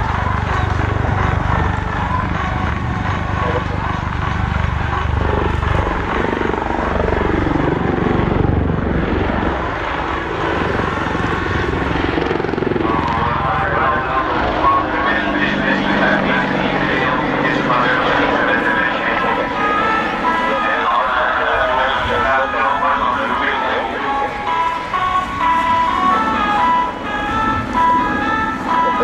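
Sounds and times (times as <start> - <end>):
helicopter engine pitch sweeping: 0.0 - 29.0
helicopter rotor beat: 0.0 - 29.0.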